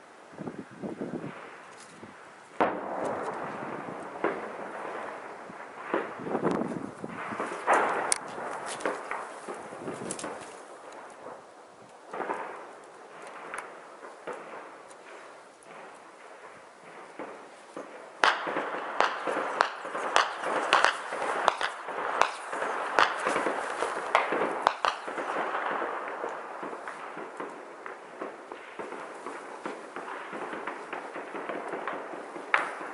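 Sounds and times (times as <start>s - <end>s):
gunfire shots and rapid bursts: 13.2s - 32.9s.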